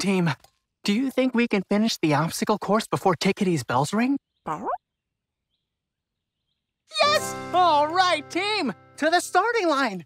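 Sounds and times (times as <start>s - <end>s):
person speaking: 6.9s - 10.0s.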